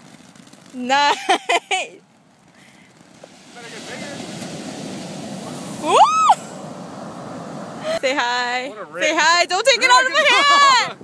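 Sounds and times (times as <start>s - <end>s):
firework hissing: 0.0s - 9.2s.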